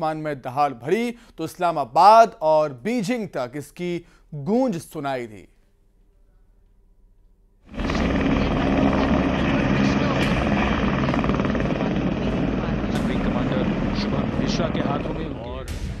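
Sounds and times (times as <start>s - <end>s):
helicopter rotor chop: 7.7s - 15.7s.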